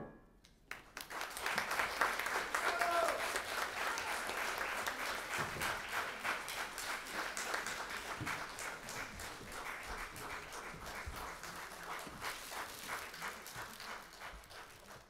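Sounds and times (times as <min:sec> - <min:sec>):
audience applauding: 0:00.7 - 0:15.0.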